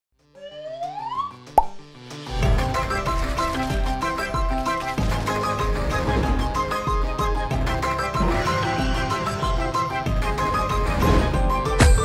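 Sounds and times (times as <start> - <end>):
sharp plop: 1.6 - 1.8.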